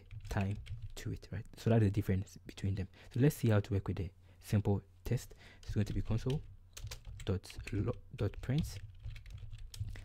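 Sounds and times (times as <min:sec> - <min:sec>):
computer keyboard typing: 0:00.0 - 0:01.1, 0:05.6 - 0:10.0.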